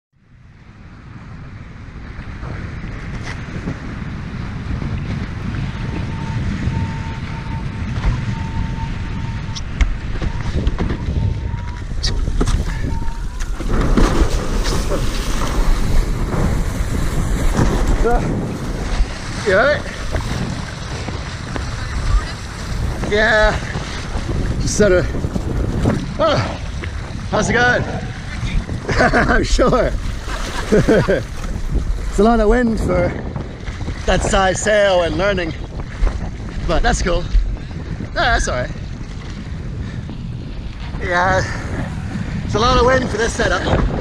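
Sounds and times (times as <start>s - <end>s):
wind buffeting microphone: 0.2s - 44.0s
thin steady whistle: 5.9s - 13.6s
water rushing: 11.5s - 32.8s.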